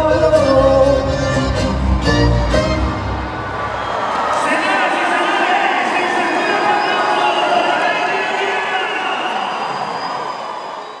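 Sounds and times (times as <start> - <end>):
concert crowd cheering and shouting: 0.1 - 11.0.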